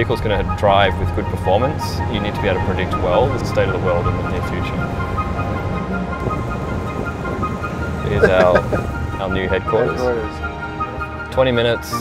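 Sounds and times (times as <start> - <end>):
car and road noise: 0.0 - 11.3
background music held tones: 0.0 - 12.0.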